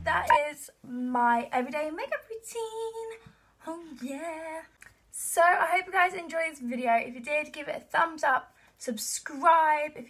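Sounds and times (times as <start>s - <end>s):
woman singing: 0.0s - 6.4s.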